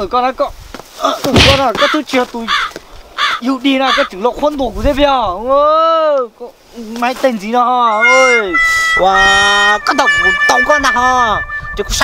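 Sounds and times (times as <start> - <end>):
man talking loudly: 7.1 - 12.0.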